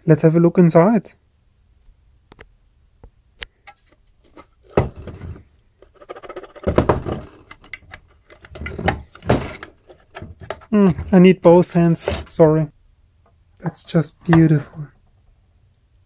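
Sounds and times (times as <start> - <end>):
knocks and rubbing: 3.7 - 7.6, 8.3 - 12.4.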